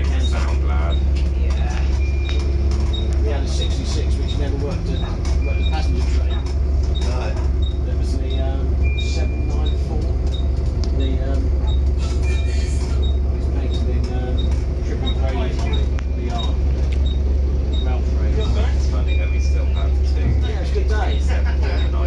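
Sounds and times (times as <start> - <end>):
diesel bus engine idling: 0.0 - 22.0.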